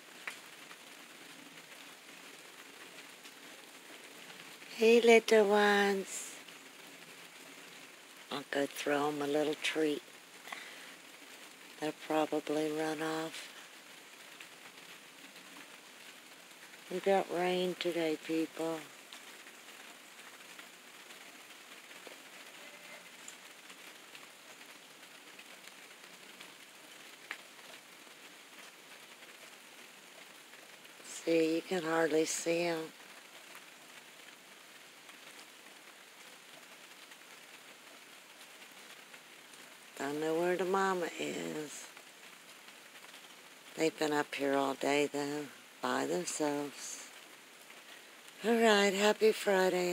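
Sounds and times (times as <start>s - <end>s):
light rain falling: 0.0s - 49.9s.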